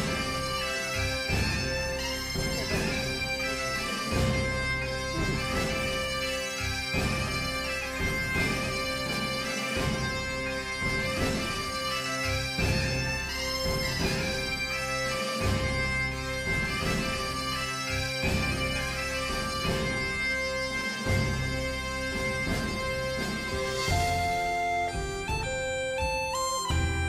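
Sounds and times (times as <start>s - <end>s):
reed instrument melody over drone: 0.0s - 27.0s.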